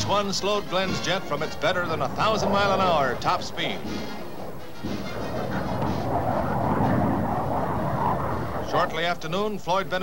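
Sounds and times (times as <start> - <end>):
jet engine rushing: 0.6 - 10.0.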